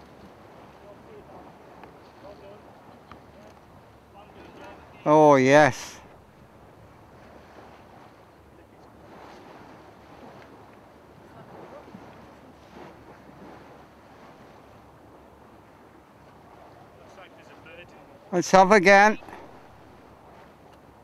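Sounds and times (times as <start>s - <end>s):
boat engine hum: 0.0s - 21.0s
water noise: 0.0s - 21.0s.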